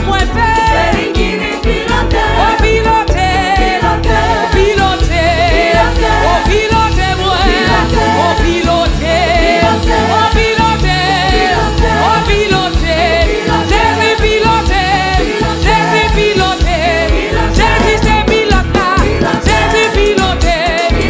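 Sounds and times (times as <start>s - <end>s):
backing singers: 0.0s - 21.0s
band with heavy bass line: 0.0s - 21.0s
woman singing with vibrato: 0.0s - 21.0s.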